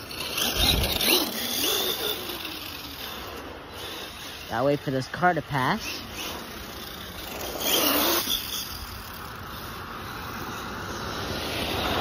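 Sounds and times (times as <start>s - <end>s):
electric motor whining: 0.0s - 5.0s.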